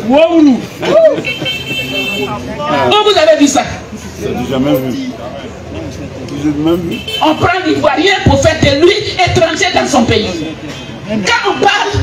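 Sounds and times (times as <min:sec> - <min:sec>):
person exclaiming or laughing: 0:00.8 - 0:01.5.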